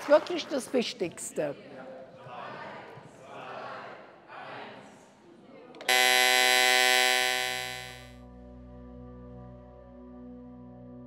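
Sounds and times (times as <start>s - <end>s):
loud electronic chime: 5.9s - 8.1s.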